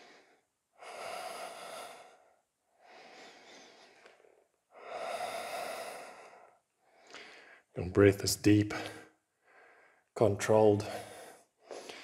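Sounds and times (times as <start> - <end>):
man breathing deeply: 0.0 - 7.8, 8.7 - 10.1, 10.8 - 12.0.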